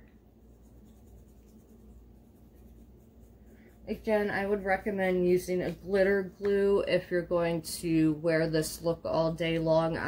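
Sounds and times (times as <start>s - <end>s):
low steady hum: 0.0s - 10.0s
scratchy rubbing on glitter: 0.2s - 6.3s.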